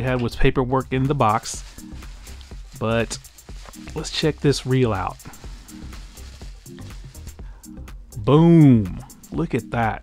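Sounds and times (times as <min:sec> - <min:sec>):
soft background music: 0:00.0 - 0:10.0
bubble wrap crinkling and crackling: 0:00.9 - 0:07.6.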